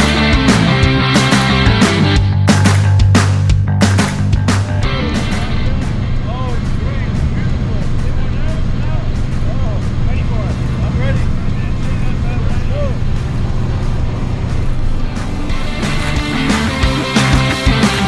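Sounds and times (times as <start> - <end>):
light plane engine drone: 4.1 - 18.0
voices: 4.5 - 18.0.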